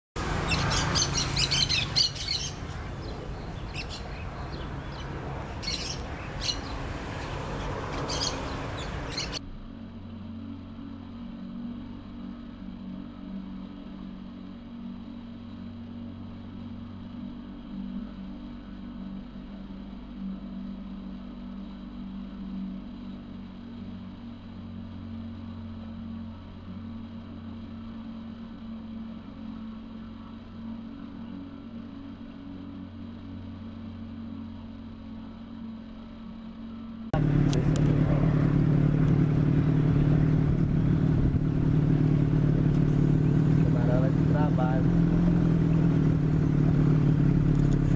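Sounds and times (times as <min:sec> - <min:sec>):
boat motor humming: 0:00.2 - 0:47.9.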